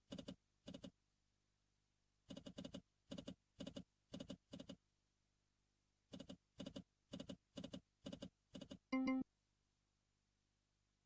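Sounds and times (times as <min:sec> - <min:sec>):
short win chime: 0:09.0 - 0:09.2.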